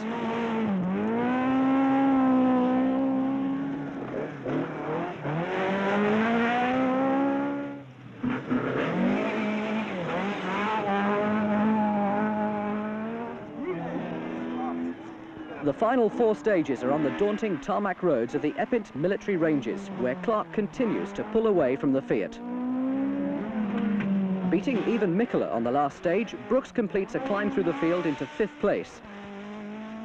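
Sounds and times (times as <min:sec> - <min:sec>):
rally car engine revving hard: 0:00.0 - 0:15.1, 0:15.7 - 0:30.0.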